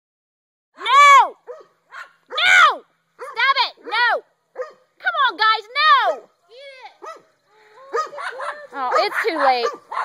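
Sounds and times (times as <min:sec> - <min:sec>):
dog barking high-pitched: 0:01.3 - 0:04.9, 0:06.0 - 0:06.4, 0:07.0 - 0:07.3, 0:07.9 - 0:10.0.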